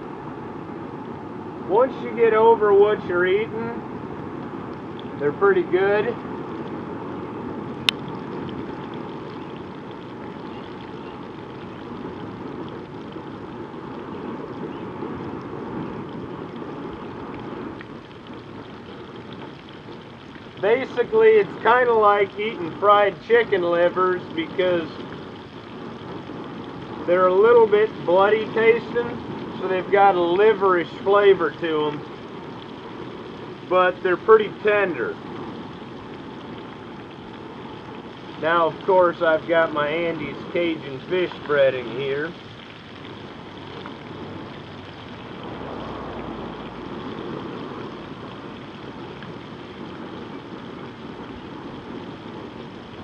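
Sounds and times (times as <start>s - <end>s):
low steady rush: 0.0s - 53.0s
food frying in oil: 3.0s - 53.0s.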